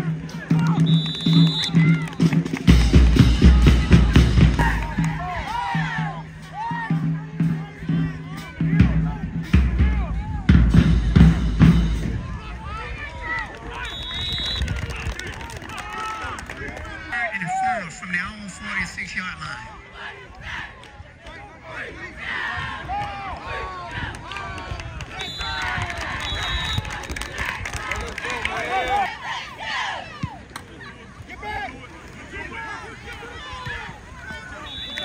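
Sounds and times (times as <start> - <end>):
marching band playing: 0.0 - 12.6
crowd voices and shouts: 0.0 - 35.0
heavy bass drum: 1.8 - 12.5.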